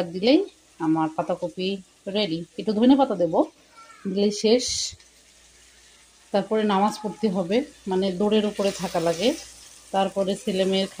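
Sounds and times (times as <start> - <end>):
woman talking: 0.0 - 3.5, 4.1 - 5.0, 6.4 - 9.4, 10.0 - 11.0
faint sizzle of cooking: 0.0 - 11.0.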